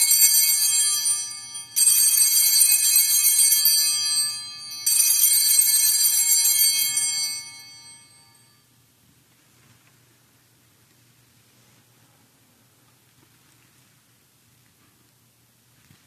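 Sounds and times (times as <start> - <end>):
altar bells ringing: 0.0 - 8.6.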